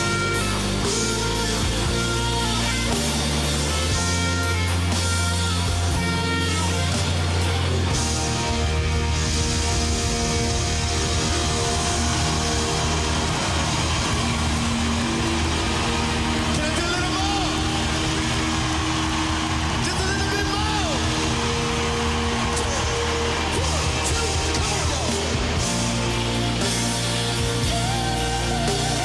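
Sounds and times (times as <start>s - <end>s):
crowd cheering and clapping: 0.0s - 29.0s
heavy bass: 0.0s - 29.0s
live band sustained chords: 0.0s - 29.0s.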